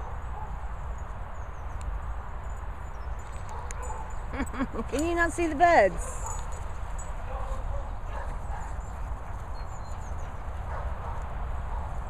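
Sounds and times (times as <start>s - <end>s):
dogs' paws running on grass: 3.0s - 11.4s.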